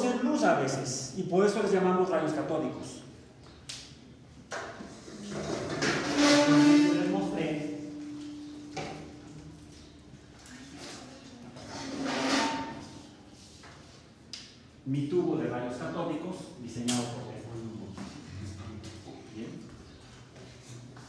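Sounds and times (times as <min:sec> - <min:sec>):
metal tripod scraping: 0:05.0 - 0:07.4, 0:11.6 - 0:13.2
drawn-out metal squeal: 0:05.8 - 0:07.8.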